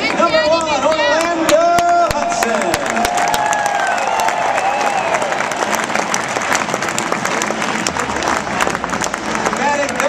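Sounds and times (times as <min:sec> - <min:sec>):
stadium crowd applauding: 0:00.0 - 0:10.0.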